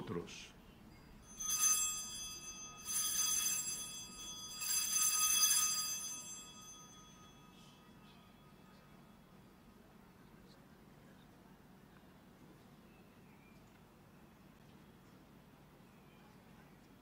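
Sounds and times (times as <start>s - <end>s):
altar bell ringing: 0.9s - 9.4s.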